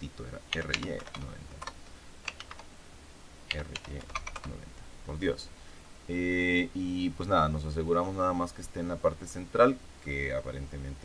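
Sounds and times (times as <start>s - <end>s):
keyboard keystrokes: 0.5s - 2.7s, 3.5s - 4.6s.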